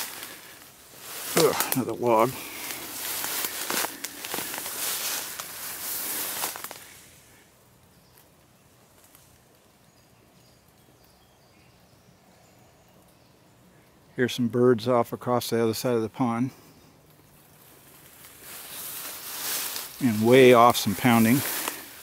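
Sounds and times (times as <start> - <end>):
footsteps through tall grass: 0.0 - 7.3, 17.6 - 22.0
faint distant bird calls: 0.0 - 22.0.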